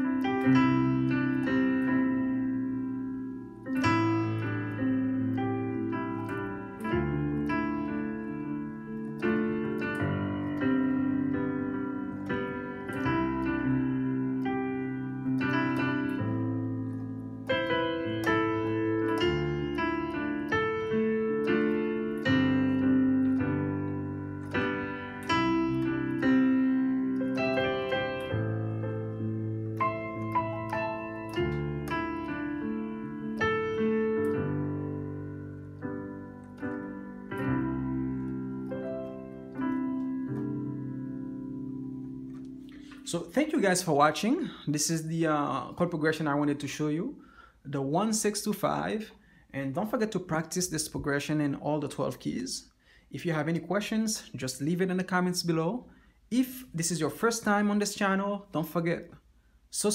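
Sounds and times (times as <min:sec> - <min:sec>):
digital piano chords: 0:00.0 - 0:59.9.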